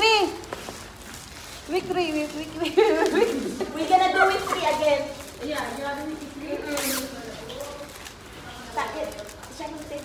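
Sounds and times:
plastic packaging ripping: 0.0s - 10.0s
voices in the room: 0.0s - 10.0s.

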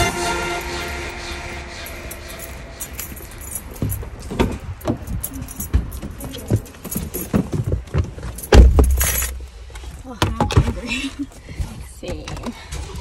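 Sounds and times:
car keys jangling: 1.8s - 9.4s.

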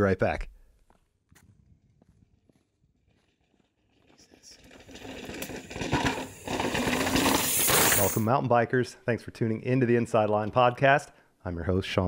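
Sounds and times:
bike tyres on rock: 2.9s - 8.3s.

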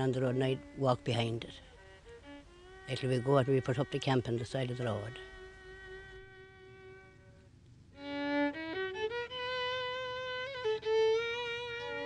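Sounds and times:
fiddle holding long note: 0.0s - 12.0s.

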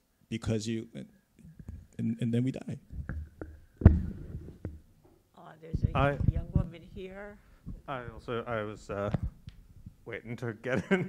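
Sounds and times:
microphone handling knocks: 2.9s - 4.9s, 5.7s - 8.4s, 9.0s - 10.0s.

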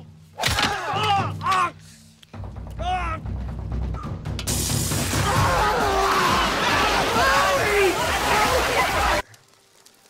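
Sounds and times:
water gushing and splashing: 4.5s - 10.0s
voices shouting: 5.2s - 9.2s.

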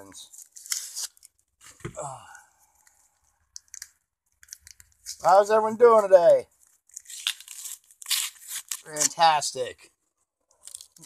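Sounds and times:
paper packaging tearing and crinkling: 0.0s - 1.8s, 6.6s - 9.4s, 10.6s - 11.0s.

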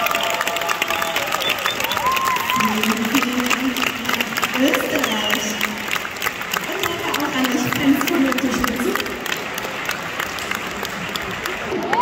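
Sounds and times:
audience clapping: 0.0s - 12.0s
crowd chatter: 0.0s - 12.0s.

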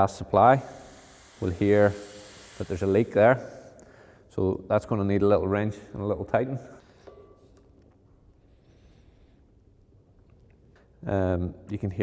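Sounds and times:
faint brief hiss: 0.7s - 3.9s.

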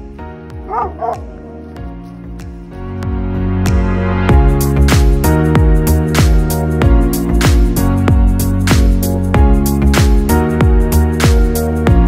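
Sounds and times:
background music: 0.0s - 12.0s
dog barking: 0.6s - 1.6s.

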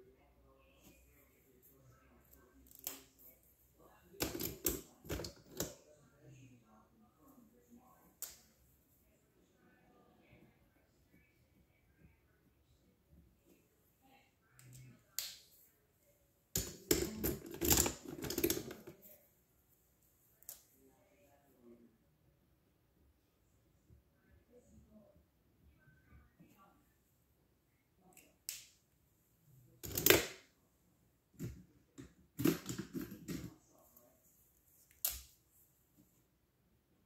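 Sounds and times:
pens clacking together: 16.6s - 18.9s, 29.8s - 30.4s
markers clicking and clattering: 16.6s - 19.0s.

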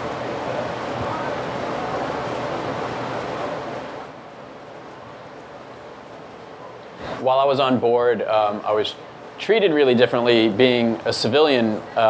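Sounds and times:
hiss-like room noise: 0.0s - 12.0s.

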